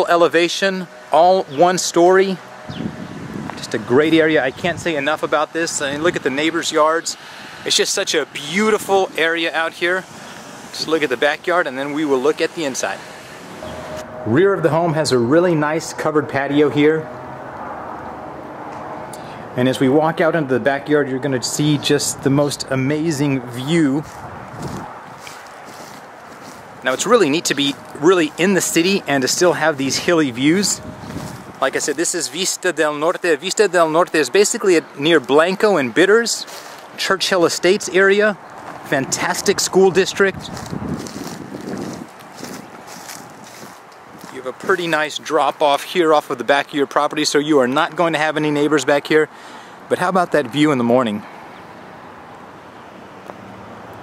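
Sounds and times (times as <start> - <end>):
steady low hiss: 0.0 - 17.2
wind on microphone: 2.5 - 5.0, 24.0 - 26.8, 29.8 - 31.8, 38.6 - 44.8.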